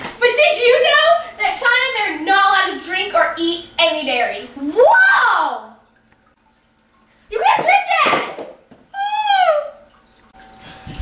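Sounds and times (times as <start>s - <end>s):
girl crying out: 9.0s - 9.8s.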